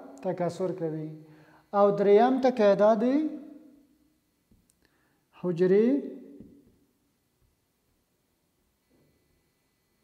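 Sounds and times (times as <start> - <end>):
man speaking: 0.0 - 3.5, 5.4 - 6.2.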